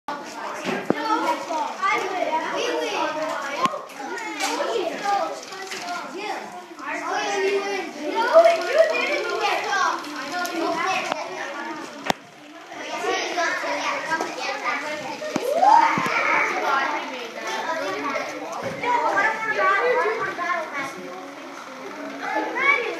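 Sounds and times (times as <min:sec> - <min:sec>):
children chattering: 0:00.1 - 0:22.9
sharp clicks: 0:08.5 - 0:12.4.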